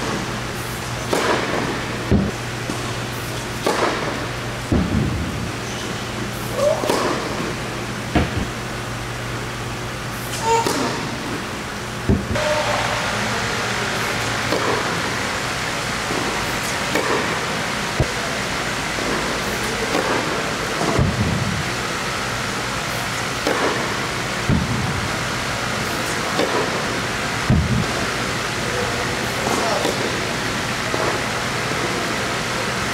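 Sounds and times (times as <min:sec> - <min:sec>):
racket hitting tennis ball: 0:01.0 - 0:08.6, 0:10.2 - 0:11.4, 0:12.1 - 0:15.2, 0:16.1 - 0:18.2, 0:19.0 - 0:21.4, 0:23.4 - 0:24.7, 0:25.8 - 0:26.9
balls bouncing on hard court: 0:06.6 - 0:08.5, 0:10.3 - 0:11.4
loud rushing noise: 0:12.0 - 0:29.2.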